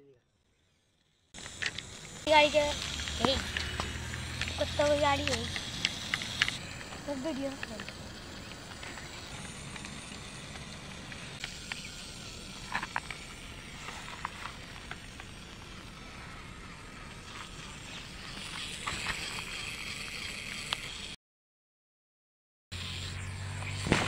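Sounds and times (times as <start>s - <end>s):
small gear motor running: 0.3s - 21.2s, 22.8s - 24.0s
robot legs clicking on dirt: 1.4s - 16.1s, 17.2s - 21.0s.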